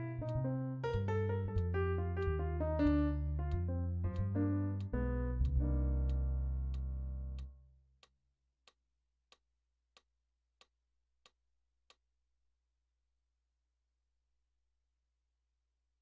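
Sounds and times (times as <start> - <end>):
digital piano playing: 0.0 - 7.5
metronome ticking: 0.2 - 7.5.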